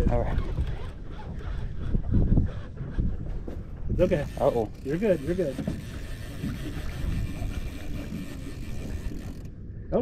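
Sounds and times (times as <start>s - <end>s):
low rumble of wind and boat: 0.0s - 10.0s
fishing reel whirring and clicking: 0.2s - 3.1s, 4.0s - 9.6s.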